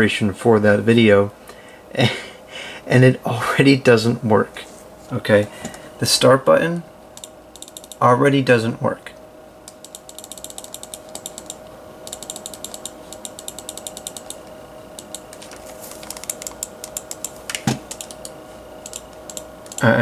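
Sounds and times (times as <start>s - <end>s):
faint steady hum: 0.0s - 20.0s
rapid mouse clicking: 7.2s - 8.0s, 9.7s - 20.0s.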